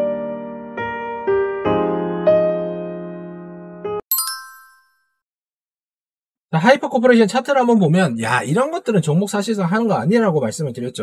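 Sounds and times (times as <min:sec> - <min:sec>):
bright high-pitched chime: 0:04.1 - 0:05.0.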